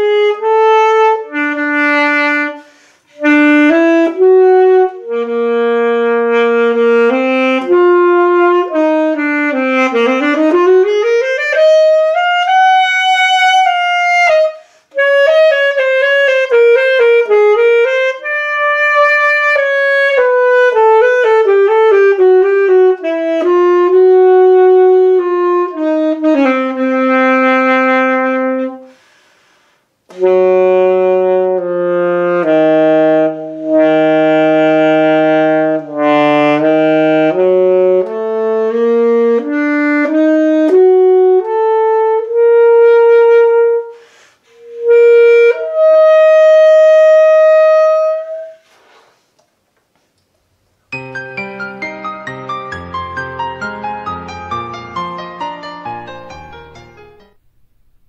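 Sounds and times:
alto saxophone melody: 0.0s - 49.2s, 50.9s - 58.0s.

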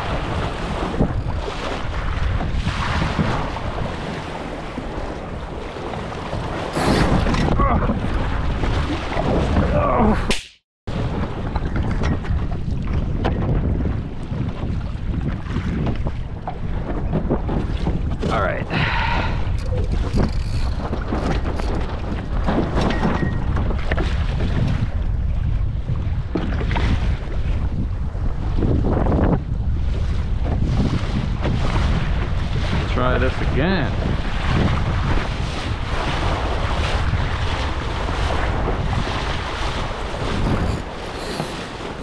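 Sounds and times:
wind buffeting microphone: 0.0s - 10.3s, 10.9s - 42.0s
water rushing and splashing: 0.0s - 12.9s, 31.4s - 42.0s.

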